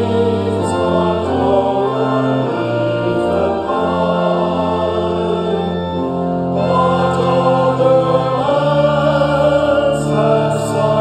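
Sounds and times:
congregation singing a hymn: 0.0s - 11.0s
sustained accompanying chords: 0.0s - 11.0s.

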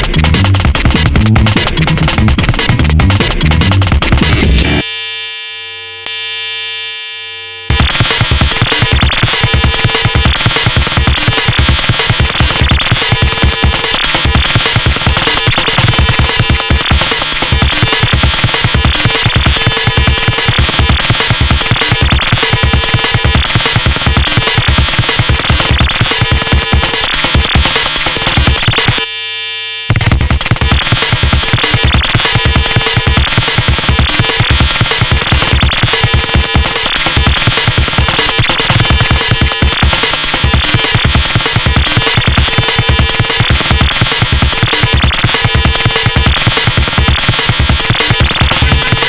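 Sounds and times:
electronic music beat: 0.0s - 4.8s, 7.7s - 29.0s, 29.9s - 49.0s
buzzy synthesizer tone: 0.0s - 49.0s.

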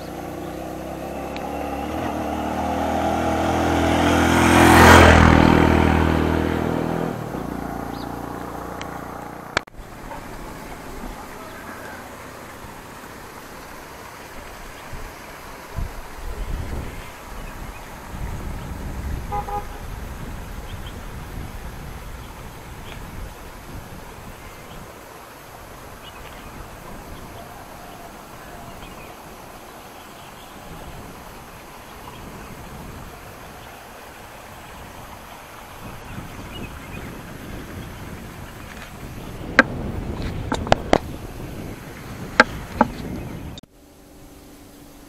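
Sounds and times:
wind buffeting microphone: 0.0s - 43.7s
vehicle moving along road: 0.0s - 45.0s.

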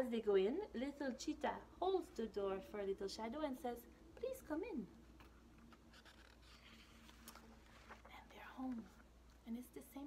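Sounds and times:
paper page turning: 5.2s - 8.3s.

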